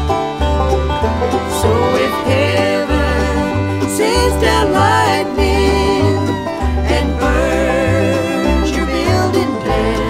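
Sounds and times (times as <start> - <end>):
steady bass: 0.0 - 10.0
string-band accompaniment: 0.0 - 10.0
person singing with vibrato: 1.5 - 10.0.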